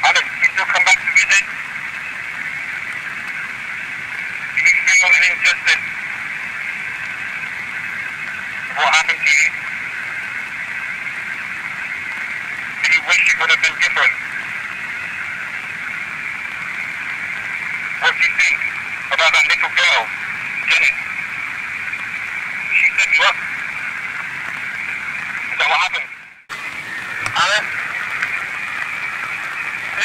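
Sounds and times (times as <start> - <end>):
thin speaker hiss: 0.0 - 30.0.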